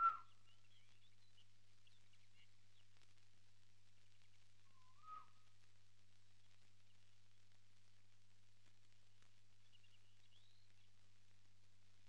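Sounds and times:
whistle-like bird call: 0.0 - 0.4, 4.7 - 5.4
faint bird chirps: 0.0 - 3.1, 3.9 - 5.6, 9.5 - 11.1
low steady hum: 0.0 - 12.0.

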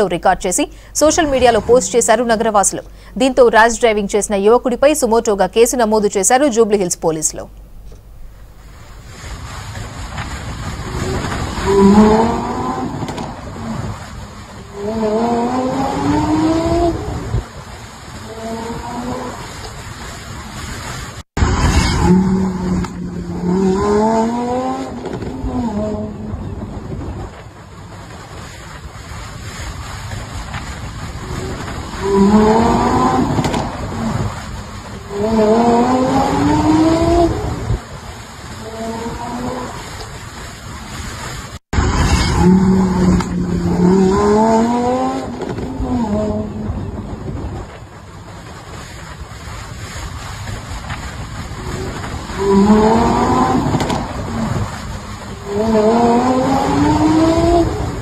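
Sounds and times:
car engine revving hard: 10.9 - 14.0, 14.6 - 17.4, 22.0 - 26.4, 31.3 - 34.4, 35.0 - 37.6, 42.4 - 46.7, 52.2 - 58.0.

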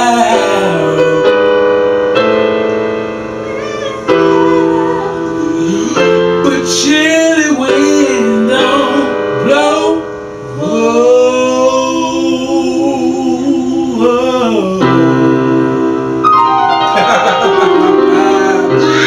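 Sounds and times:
person singing gospel: 0.0 - 1.6, 3.5 - 16.0, 17.8 - 19.0
sustained piano chords: 0.0 - 19.0.

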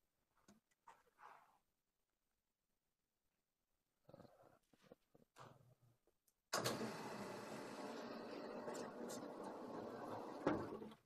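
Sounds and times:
blackboard panel rolling on track: 6.6 - 10.9.

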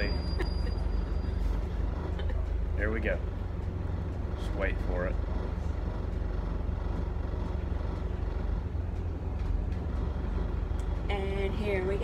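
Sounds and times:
low vehicle rumble: 0.0 - 12.0.

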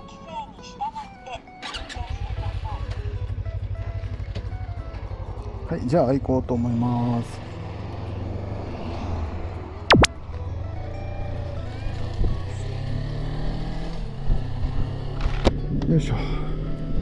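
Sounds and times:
motorcycle engine running: 1.8 - 8.1
loud sharp click: 9.9 - 10.2.

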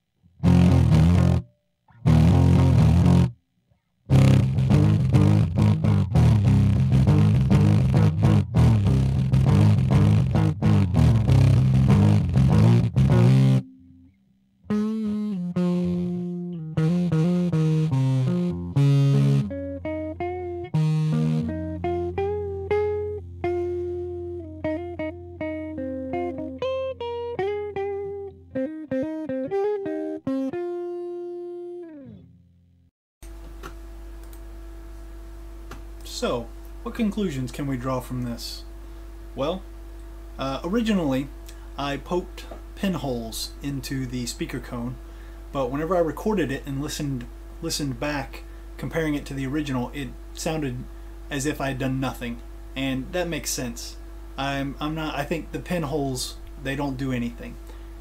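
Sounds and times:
distorted electric guitar: 0.4 - 3.4, 4.1 - 14.1, 14.7 - 32.4.

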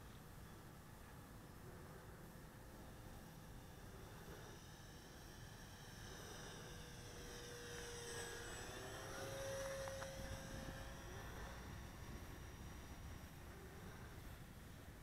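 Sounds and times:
model plane motor whining: 1.4 - 15.0.

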